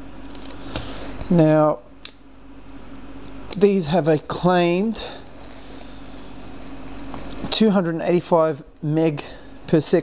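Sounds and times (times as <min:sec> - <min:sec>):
faint low hum: 0:00.0 - 0:10.0
steady background hiss: 0:00.0 - 0:10.0.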